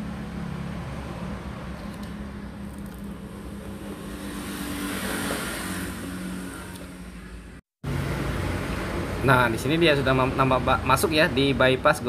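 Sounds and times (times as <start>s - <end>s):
vehicle passing: 0.0s - 11.4s.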